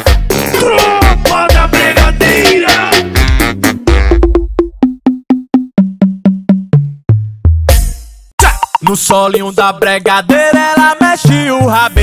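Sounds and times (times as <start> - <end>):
pitched drum hits: 4.0 - 9.0.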